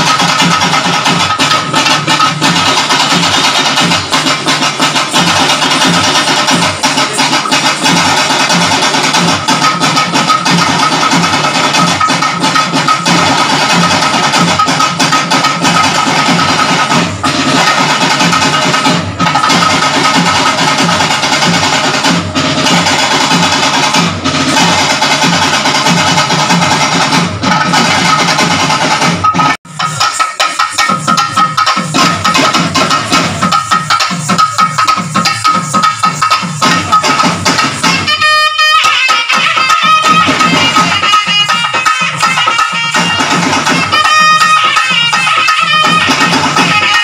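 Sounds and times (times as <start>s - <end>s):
driving drum rhythm: 0.0s - 47.0s.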